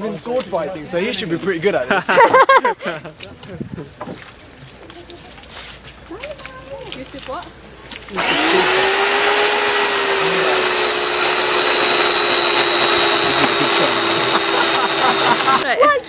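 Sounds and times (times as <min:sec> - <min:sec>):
whining machine: 0:08.2 - 0:15.6.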